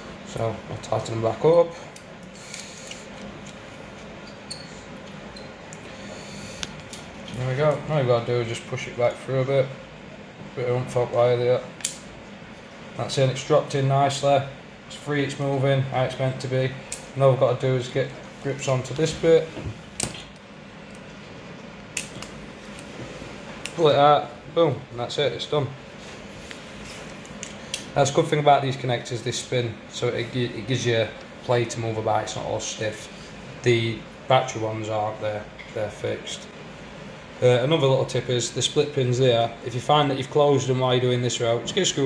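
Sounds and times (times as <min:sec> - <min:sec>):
steady low hiss: 0:00.0 - 0:42.0.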